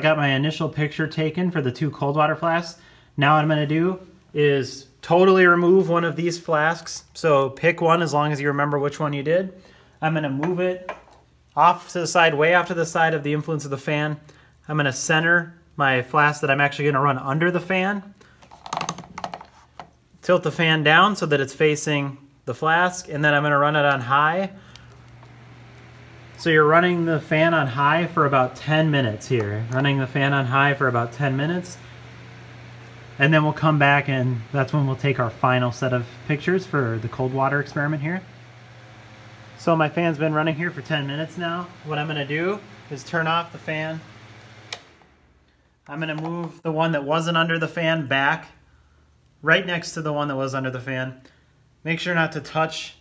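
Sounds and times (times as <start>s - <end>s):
electric fan running: 20.5s - 51.5s
plastic desk fan clicks: 44.4s - 45.0s.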